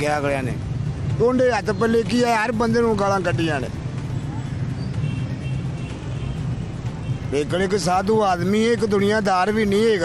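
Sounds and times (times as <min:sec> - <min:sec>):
city street traffic rumble: 0:00.0 - 0:10.0
faint background music: 0:00.0 - 0:10.0.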